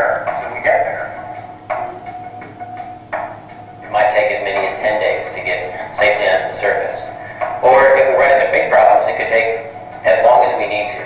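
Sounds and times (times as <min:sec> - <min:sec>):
voice over loudspeakers: 0:00.0 - 0:01.2, 0:03.9 - 0:11.0
background music: 0:00.0 - 0:11.0.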